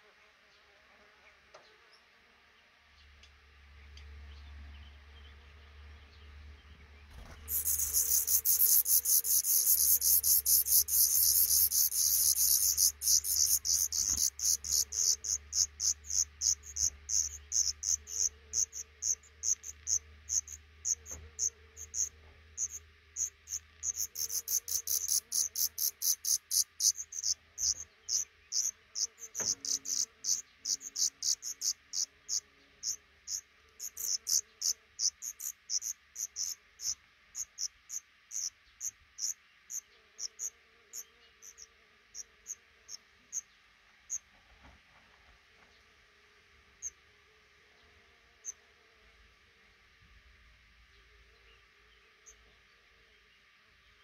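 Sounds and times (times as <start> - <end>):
nestlings begging high cheeps: 7.4 - 37.7.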